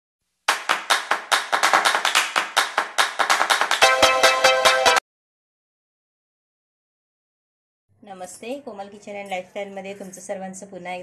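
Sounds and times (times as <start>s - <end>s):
rhythmic handclaps: 0.5s - 5.0s.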